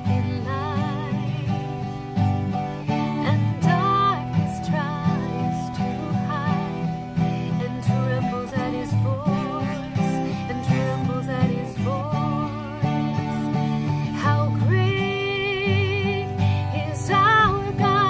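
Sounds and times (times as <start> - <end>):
acoustic guitar strumming: 0.0 - 18.0
woman singing worship song: 0.0 - 18.0.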